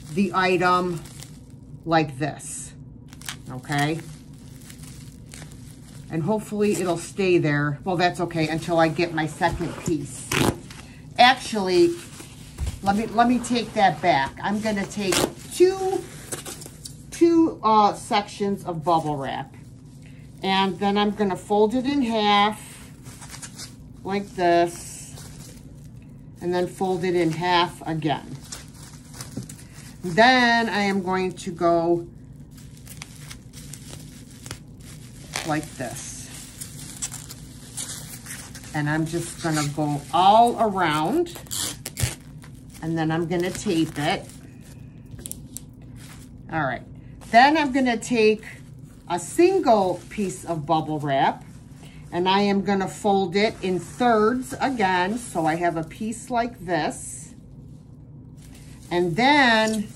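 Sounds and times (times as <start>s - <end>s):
bubble wrap crinkling: 0.0s - 59.9s.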